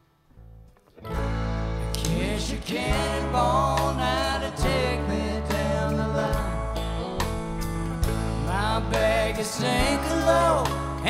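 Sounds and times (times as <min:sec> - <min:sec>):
live country-rock band: 0:01.0 - 0:11.0.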